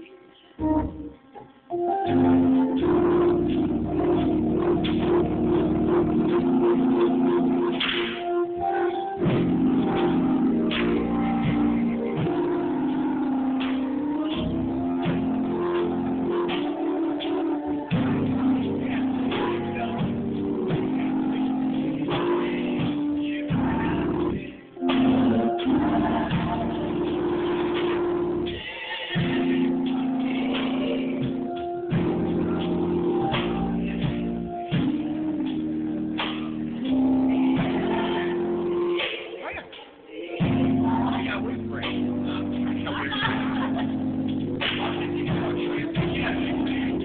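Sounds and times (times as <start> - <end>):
choir singing held chord: 1.9 - 47.0.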